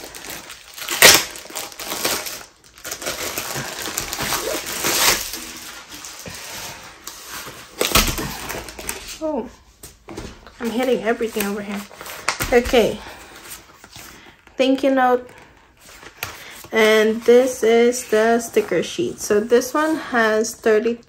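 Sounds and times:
sharp plastic crackles: 0:00.0 - 0:09.2, 0:10.2 - 0:14.2
plastic sleeve crinkling: 0:00.0 - 0:19.8.

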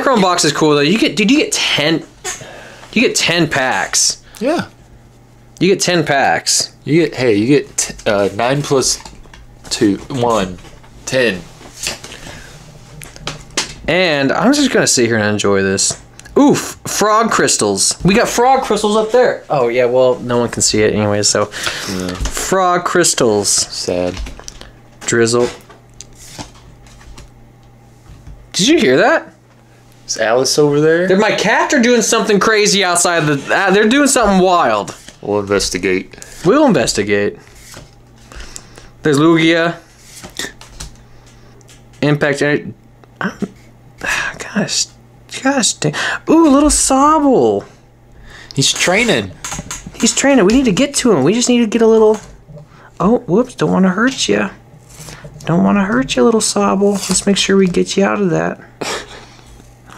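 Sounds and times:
steady low hum: 0:00.0 - 0:59.9
man speaking: 0:13.8 - 0:24.3, 0:30.1 - 0:37.4, 0:55.4 - 0:58.6
cards sliding over cards: 0:21.5 - 0:22.3, 0:25.4 - 0:27.3, 0:34.6 - 0:36.7, 0:37.4 - 0:38.9, 0:39.8 - 0:42.0
trading cards flipped: 0:37.5 - 0:38.6.

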